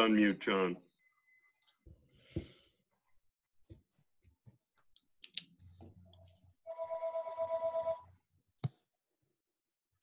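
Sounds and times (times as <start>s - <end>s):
telephone ringing: 6.7s - 8.1s.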